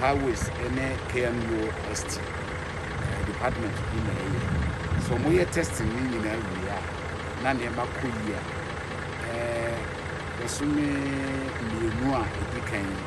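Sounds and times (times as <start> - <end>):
steady low rumble: 0.0 - 13.0
man making hesitation sounds: 3.0 - 8.4, 9.2 - 13.0.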